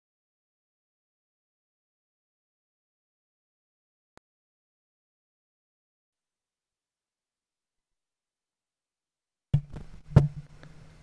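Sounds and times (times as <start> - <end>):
microphone pop: 9.5 - 10.5
microphone handling knock: 9.6 - 10.5
low electrical buzz: 9.6 - 11.0.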